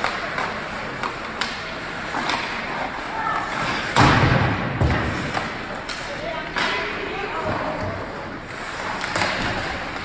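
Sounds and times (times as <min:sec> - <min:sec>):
hockey sticks and puck clacking: 0:00.0 - 0:10.0
voices in arena: 0:00.0 - 0:10.0
thump against rink boards: 0:03.5 - 0:08.1, 0:09.0 - 0:10.0.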